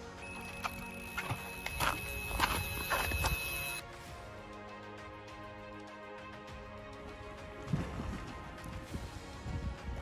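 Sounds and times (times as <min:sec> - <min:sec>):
bite alarm high tone: 0:00.2 - 0:03.8.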